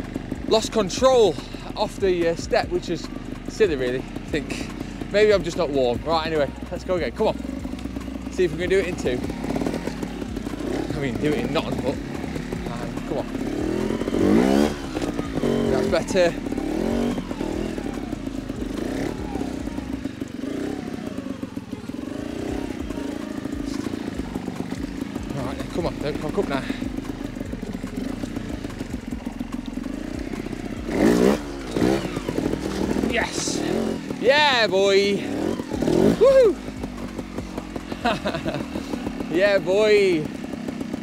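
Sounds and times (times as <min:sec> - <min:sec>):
motorcycle engine revving: 0:00.0 - 0:41.0
rider laughing: 0:30.0 - 0:39.5.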